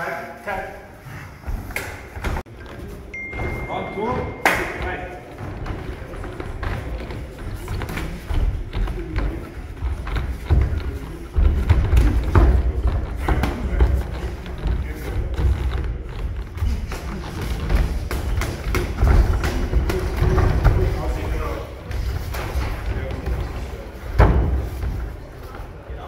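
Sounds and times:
faint voices: 0:02.5 - 0:26.0.

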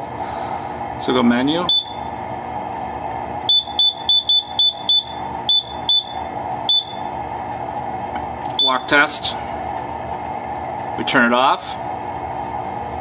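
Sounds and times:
room hum: 0:00.0 - 0:13.0.

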